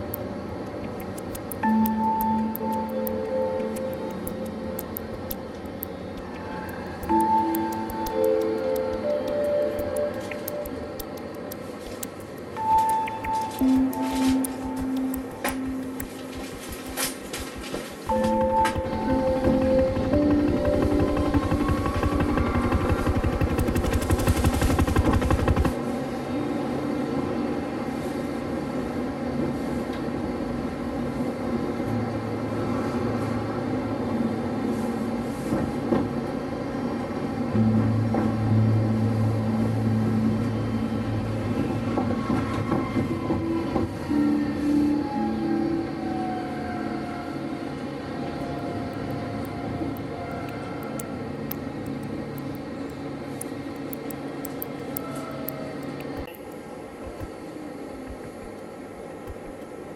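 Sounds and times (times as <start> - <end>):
soft background music: 0.0 - 29.7, 36.2 - 56.4
tram riding: 0.0 - 59.9.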